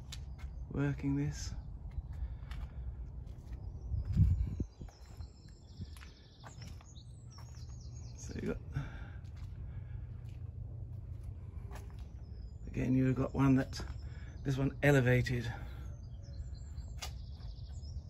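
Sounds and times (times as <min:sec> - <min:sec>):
wind rumble: 0:00.0 - 0:14.9
small bird chirping: 0:03.4 - 0:08.8.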